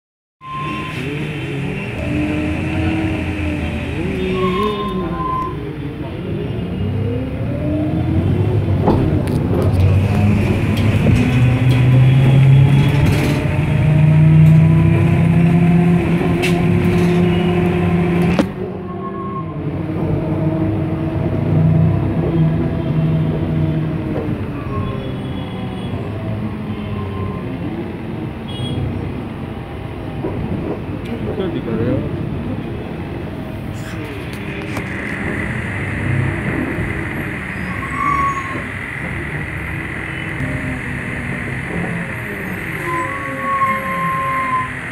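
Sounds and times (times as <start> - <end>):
bus engine and cabin noise: 0.4 - 44.9.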